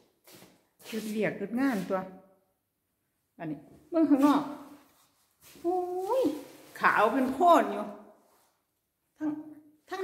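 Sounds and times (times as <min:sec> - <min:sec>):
woman talking: 0:00.9 - 0:02.1, 0:03.4 - 0:04.7, 0:05.6 - 0:08.0, 0:09.2 - 0:10.0.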